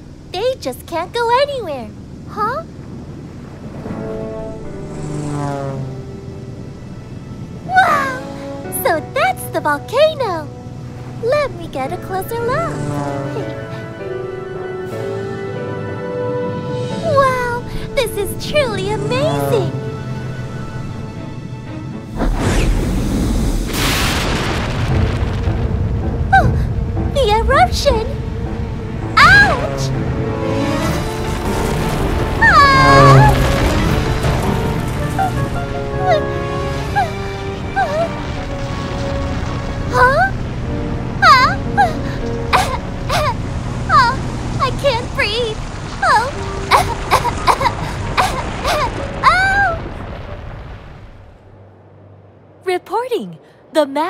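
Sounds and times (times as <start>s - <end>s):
background music: 3.4s - 50.8s
deep rumble: 10.5s - 52.7s
loud blast: 22.1s - 27.0s.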